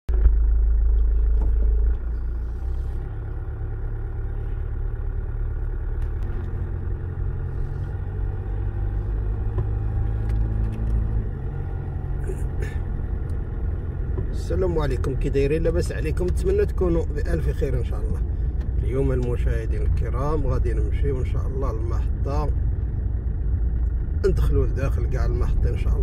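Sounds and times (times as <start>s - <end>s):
car engine and road noise: 0.0s - 26.0s.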